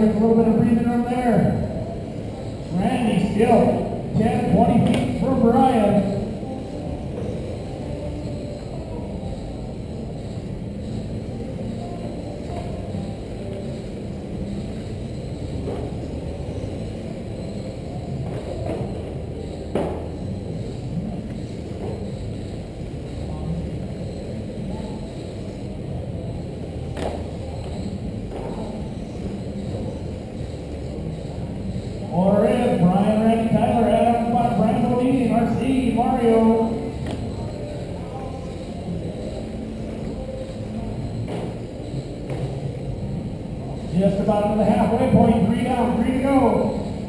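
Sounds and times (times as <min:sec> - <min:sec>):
faint background chatter: 0:00.0 - 0:47.0.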